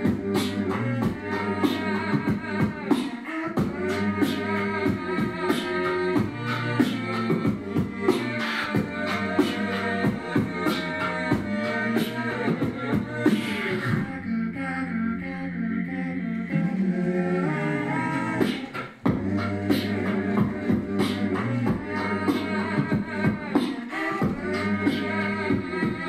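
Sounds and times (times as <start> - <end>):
beatboxed percussion: 0.0 - 14.2, 15.8 - 26.0
looped vocal layers: 0.0 - 26.0.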